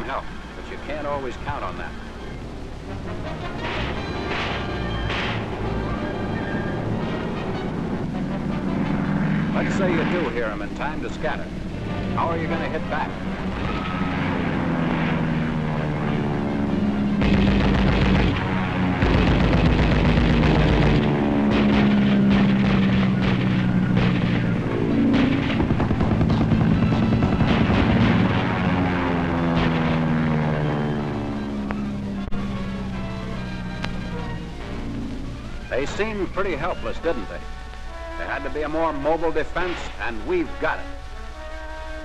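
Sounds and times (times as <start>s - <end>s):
film soundtrack music: 0.0s - 42.0s
propeller aircraft engines passing: 0.0s - 42.0s
gunfire bursts: 12.5s - 15.5s, 17.2s - 30.8s.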